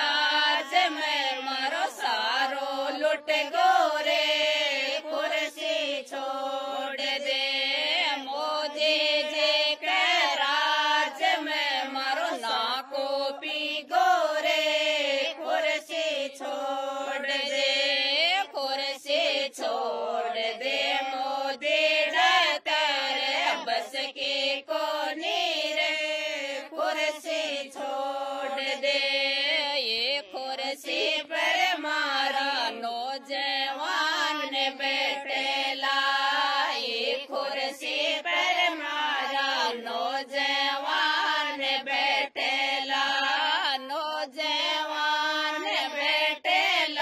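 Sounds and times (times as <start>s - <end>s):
women singing a folk song: 0.0s - 47.0s.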